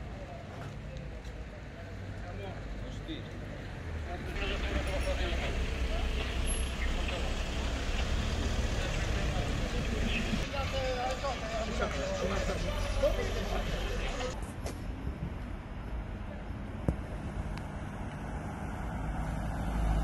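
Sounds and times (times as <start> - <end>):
people talking: 0.0 - 7.8, 8.6 - 14.4
vehicle engine running: 4.4 - 14.4.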